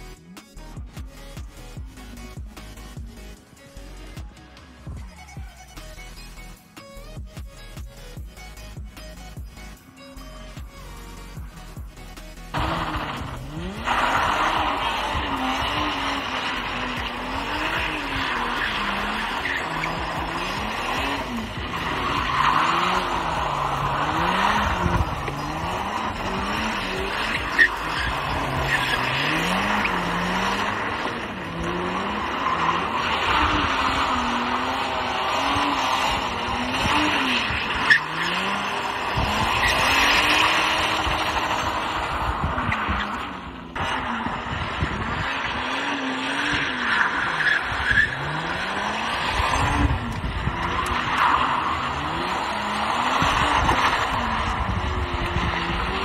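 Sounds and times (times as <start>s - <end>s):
car engine revving: 0.0s - 56.0s
tyres squealing on tarmac: 12.4s - 54.7s.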